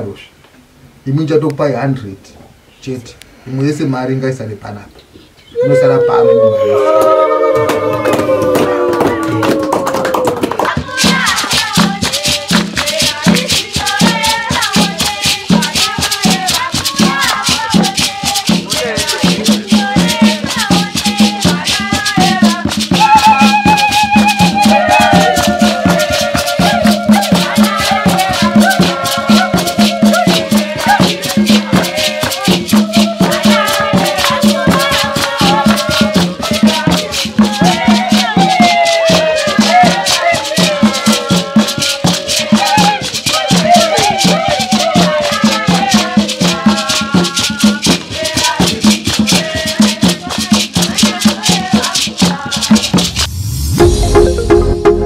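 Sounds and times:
people singing: 5.6s - 53.2s
hand drums beating: 6.8s - 55.0s
rattles shaking: 10.7s - 53.3s.

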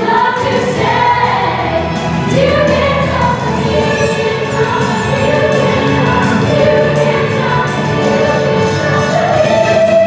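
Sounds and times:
instrumental accompaniment: 0.0s - 10.0s
young performers singing together: 0.0s - 10.0s.

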